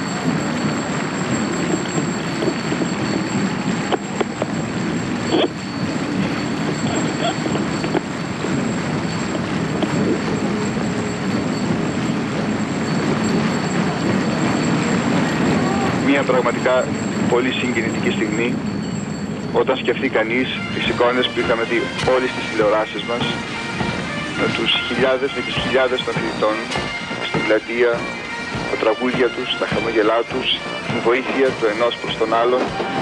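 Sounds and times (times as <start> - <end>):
murmur of outdoor crowd: 0.0 - 33.0.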